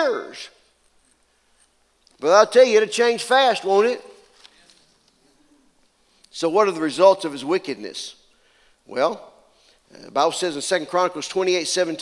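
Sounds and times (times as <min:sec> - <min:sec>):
man speaking in reverberant hall: 0:00.0 - 0:01.4, 0:02.1 - 0:12.0.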